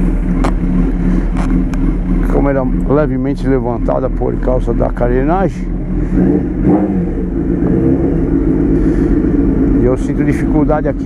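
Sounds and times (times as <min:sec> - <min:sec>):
motorcycle engine at low revs: 0:00.0 - 0:11.0.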